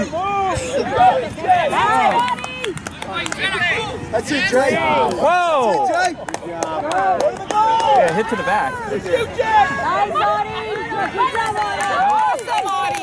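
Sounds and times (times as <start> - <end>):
people shouting and calling out: 0.0 - 13.0.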